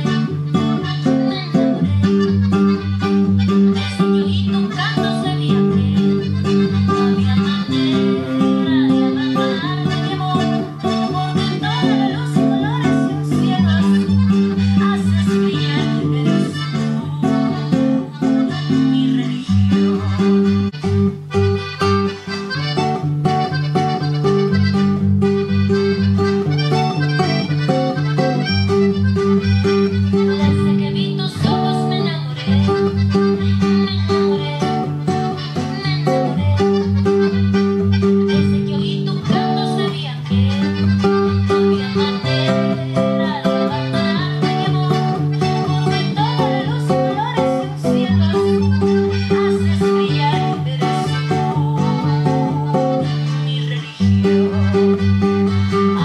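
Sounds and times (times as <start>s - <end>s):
fingerpicked classical guitar: 0.0s - 56.0s.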